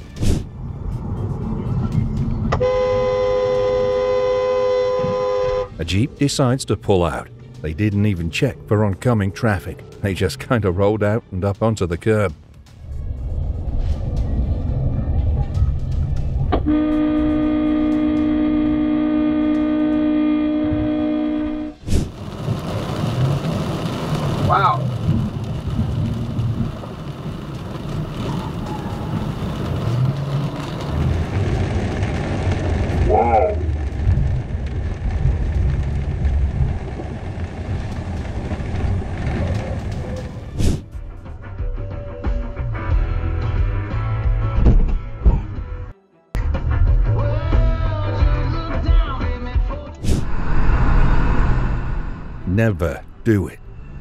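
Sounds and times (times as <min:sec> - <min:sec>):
road noise: 0:00.0 - 0:41.5, 0:49.9 - 0:54.0
vehicle horn blast: 0:02.6 - 0:05.8, 0:16.6 - 0:21.8
background music: 0:05.5 - 0:19.4, 0:40.4 - 0:50.3.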